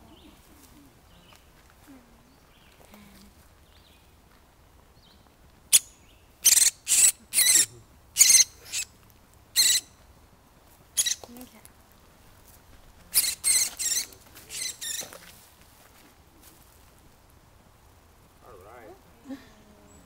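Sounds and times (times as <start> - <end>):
woodpecker high-pitched calls: 5.7 - 8.9, 9.6 - 10.0, 11.0 - 11.4, 13.1 - 15.2.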